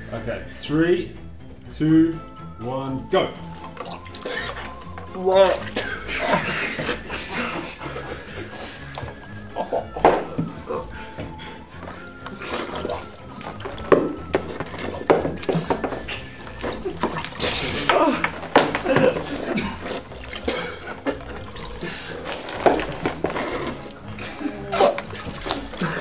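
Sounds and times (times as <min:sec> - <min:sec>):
background music: 0:00.0 - 0:26.0
water splashing in tubs: 0:03.1 - 0:26.0
people laughing: 0:05.5 - 0:11.6, 0:15.5 - 0:22.6, 0:23.4 - 0:26.0.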